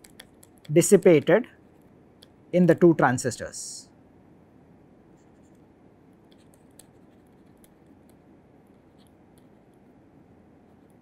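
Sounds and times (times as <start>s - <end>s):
stylus tapping and scratching: 0.0s - 2.4s, 5.2s - 9.9s.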